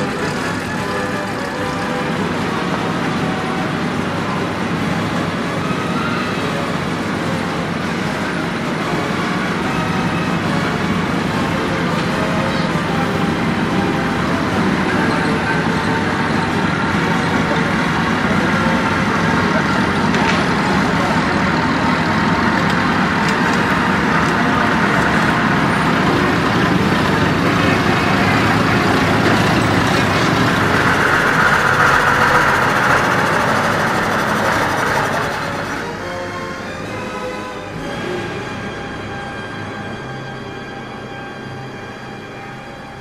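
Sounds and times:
lorry and bus engines running: 0:00.0 - 0:43.0
people's voices: 0:00.0 - 0:43.0.

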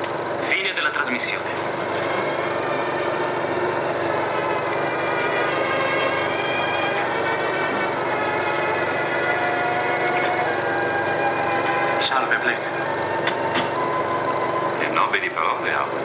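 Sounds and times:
film soundtrack hiss and crackle: 0:00.0 - 0:16.0.

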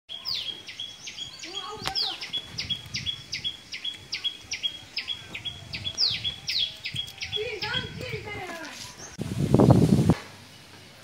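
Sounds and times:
small bird chirping: 0:00.1 - 0:09.2
faint outdoor background noise: 0:00.1 - 0:11.0.

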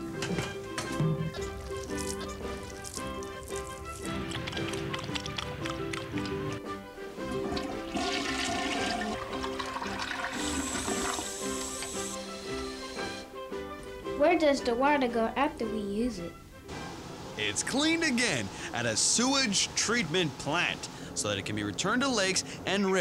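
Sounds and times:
background music: 0:00.0 - 0:23.0
toilet flushing: 0:07.4 - 0:13.2.

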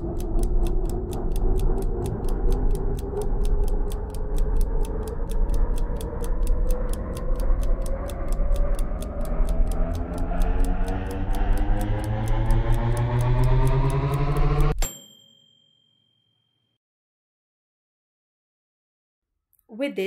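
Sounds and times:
clock ticking: 0:00.0 - 0:14.8
rising music bed: 0:06.4 - 0:14.8.

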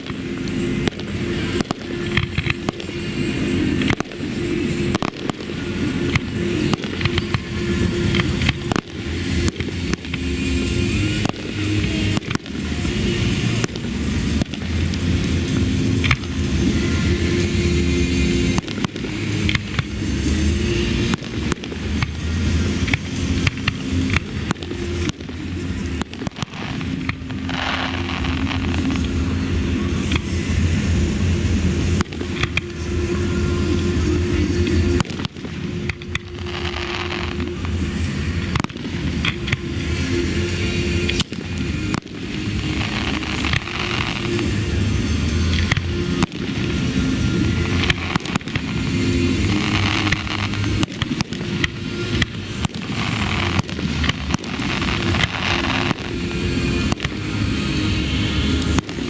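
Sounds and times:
fireworks bursting: 0:00.0 - 0:59.0.

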